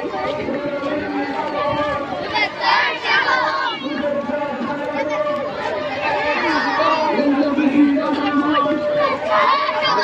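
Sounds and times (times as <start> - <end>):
crowd voices talking: 0.0 - 10.0.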